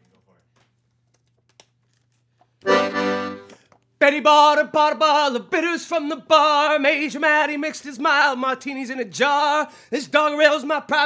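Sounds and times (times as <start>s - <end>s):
accordion keys clicking: 2.6s - 3.8s.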